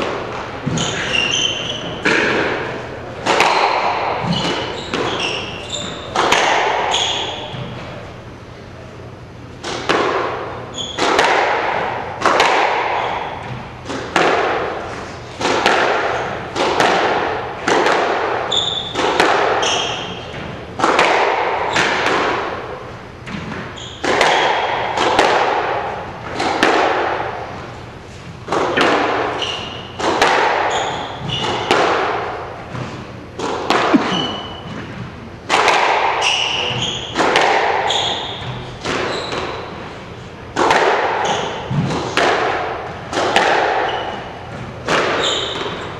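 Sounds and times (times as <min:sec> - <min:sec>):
squash ball hits: 0:00.0 - 0:08.1, 0:09.6 - 0:27.6, 0:28.4 - 0:39.9, 0:40.5 - 0:45.9
shoes squeaking on wooden floor: 0:00.6 - 0:02.1, 0:04.2 - 0:06.1, 0:33.8 - 0:34.9, 0:37.9 - 0:39.5.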